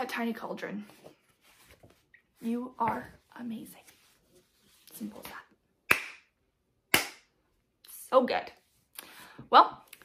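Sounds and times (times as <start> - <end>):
sharp hand claps: 5.9 - 6.2, 6.9 - 7.2.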